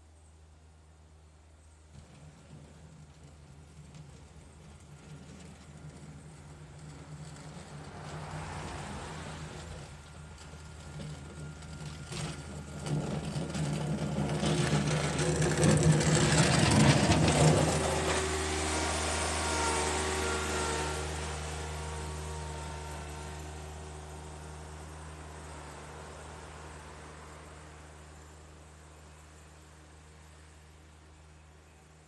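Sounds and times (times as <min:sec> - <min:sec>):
diesel mower engine running: 0:01.9 - 0:32.0
bucket scraping through snow: 0:11.7 - 0:23.4.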